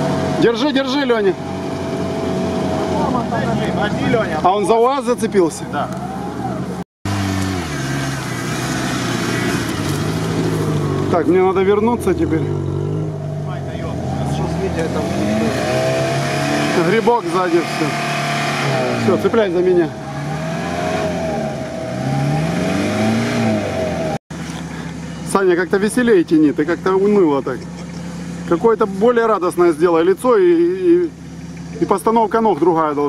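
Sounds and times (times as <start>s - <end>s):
truck engine running: 0.0s - 20.8s, 23.7s - 33.0s.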